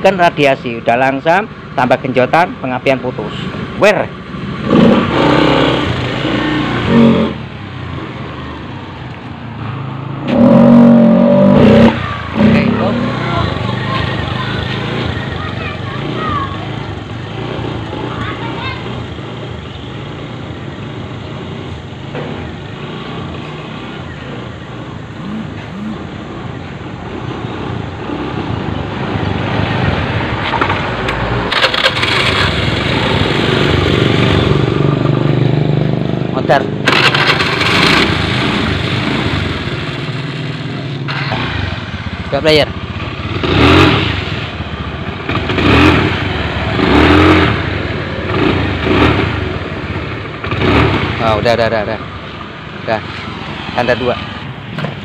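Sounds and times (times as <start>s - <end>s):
scooter engine stuttering: 31.5s - 52.0s.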